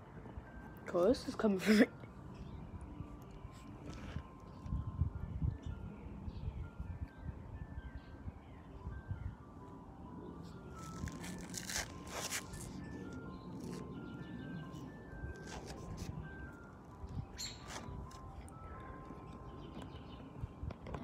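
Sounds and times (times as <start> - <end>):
ice cream truck jingle: 0.0 - 21.0
rustling near microphone: 10.7 - 14.0.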